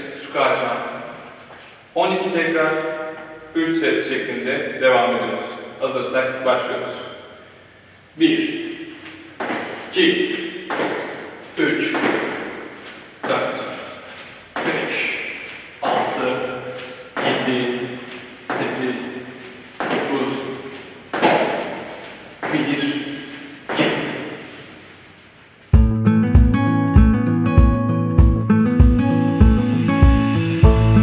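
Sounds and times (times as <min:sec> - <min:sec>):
man counting aloud: 0:08.2 - 0:12.6, 0:13.2 - 0:21.8, 0:22.4 - 0:24.6
acoustic guitar music: 0:25.7 - 0:31.0.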